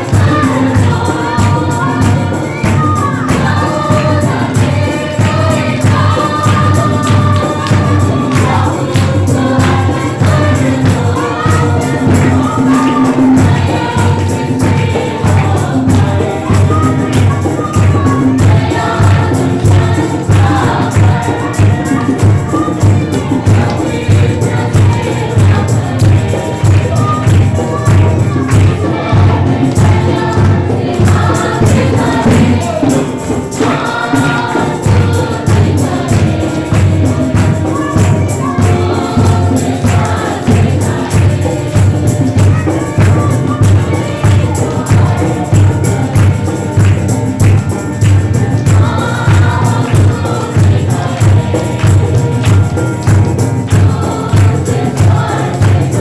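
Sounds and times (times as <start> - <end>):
congregation singing: 0.0 - 56.0
percussion beat: 0.0 - 56.0
rhythmic hand clapping: 0.0 - 56.0.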